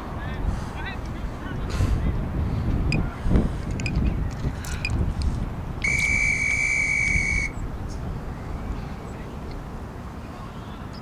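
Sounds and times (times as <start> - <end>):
long electronic beep: 5.8 - 7.6.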